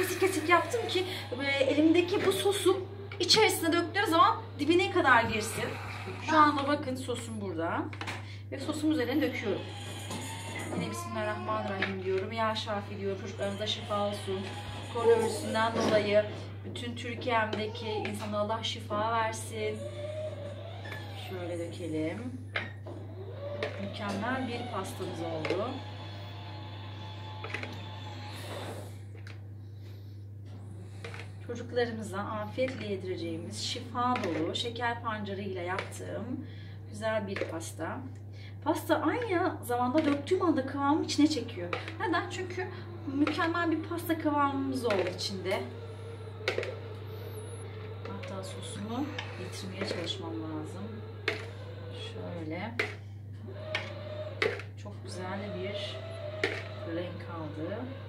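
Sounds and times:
steady low hum: 0.0 - 58.0
metal spoon scraping plastic bowl: 41.1 - 58.0.

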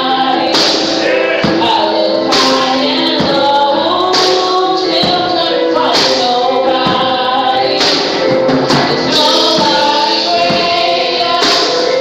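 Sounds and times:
gospel choir singing in harmony: 0.0 - 12.0.

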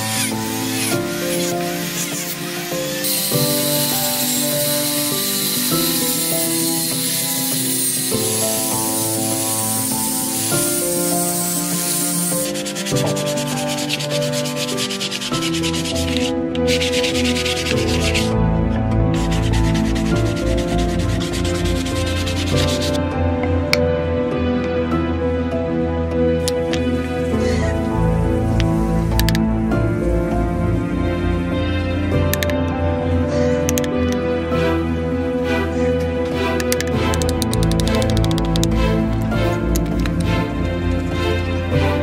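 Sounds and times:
sandpaper rubbing by hand: 0.0 - 18.4, 19.1 - 23.0
angle grinder sanding whine: 0.0 - 23.0
background music: 0.0 - 42.0.

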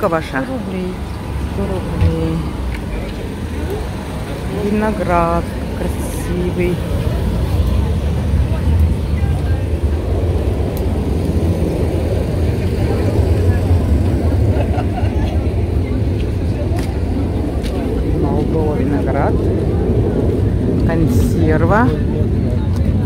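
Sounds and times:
low rumble: 0.0 - 23.0
murmur of voices: 0.0 - 23.0.

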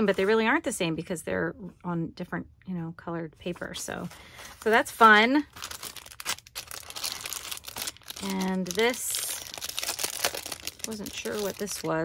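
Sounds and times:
paper rustling and crinkling: 3.6 - 12.0.

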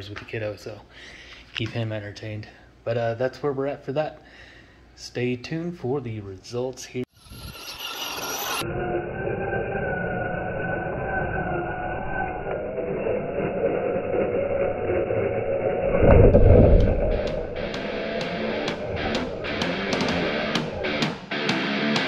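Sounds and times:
toy truck motor whining: 7.1 - 15.9
low rush: 7.2 - 21.4.

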